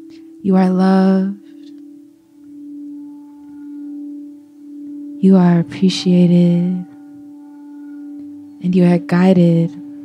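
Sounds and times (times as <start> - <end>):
singing bowl ringing: 0.0 - 10.0.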